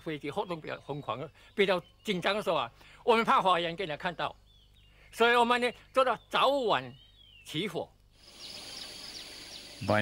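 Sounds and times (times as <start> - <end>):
high-pitched insect drone: 8.2 - 10.0.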